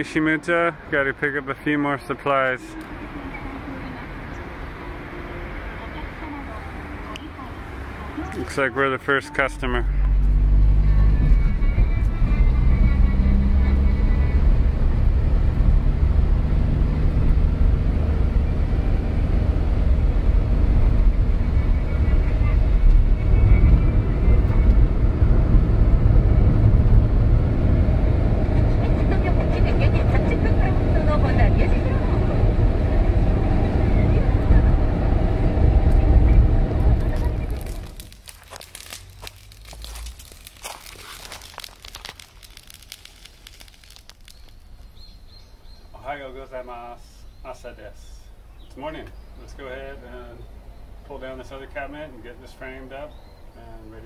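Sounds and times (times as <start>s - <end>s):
car engine and tyre rumble: 0.0s - 54.0s.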